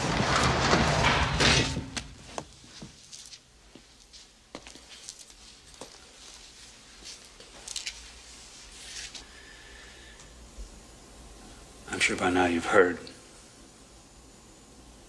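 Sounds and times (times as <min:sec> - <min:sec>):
low room hum: 0:00.0 - 0:15.0
short hissing rustles: 0:06.4 - 0:10.2.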